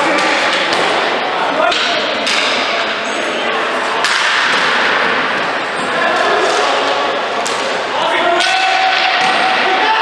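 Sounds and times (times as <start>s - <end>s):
echoing rink noise: 0.0s - 10.0s
hockey stick striking ball: 4.0s - 5.2s.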